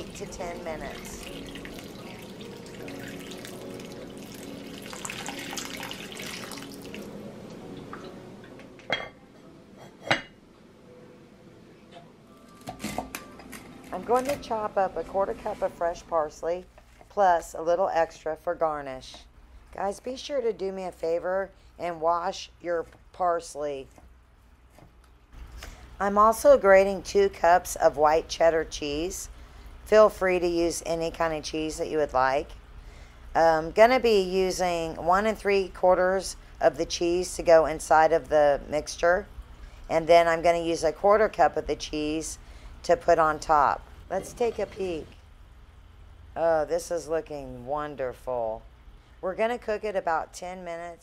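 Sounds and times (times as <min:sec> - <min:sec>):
water splashing into a pot: 0:01.0 - 0:07.1.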